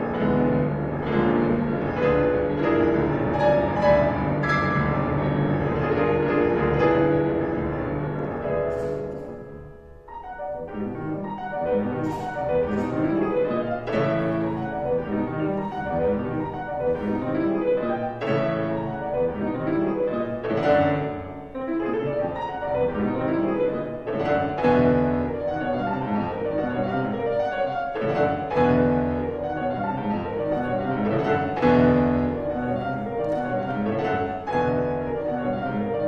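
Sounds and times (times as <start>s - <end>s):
grand piano playing: 0.0s - 36.0s.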